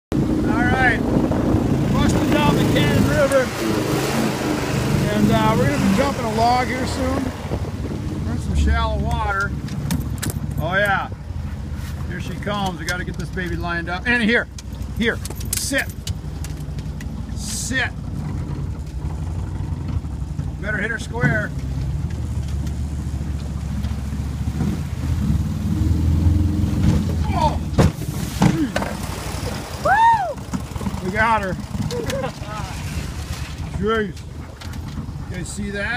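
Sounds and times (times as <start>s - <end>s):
boat motor running: 0.1s - 35.9s.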